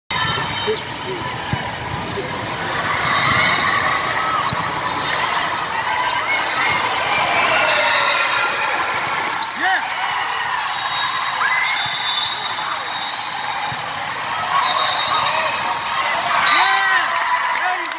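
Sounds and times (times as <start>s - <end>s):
spectators chattering: 0.1s - 17.9s
volleyballs struck and bouncing: 0.2s - 5.6s
sneakers squeaking on floor: 0.2s - 9.6s, 10.2s - 16.6s.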